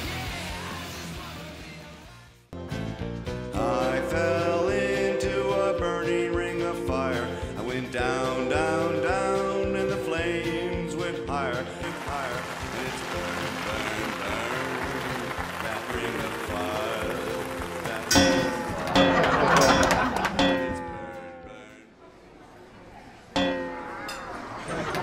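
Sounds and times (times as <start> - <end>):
country song with singing: 3.5 - 22.1
falling tones: 17.9 - 21.8
cartoon voices: 20.5 - 22.1.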